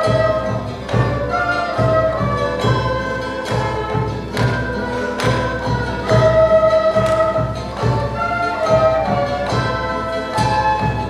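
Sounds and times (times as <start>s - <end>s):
drum beat: 0.0s - 11.0s
flutes playing a melody: 0.0s - 11.0s
strummed guitar: 0.0s - 11.0s.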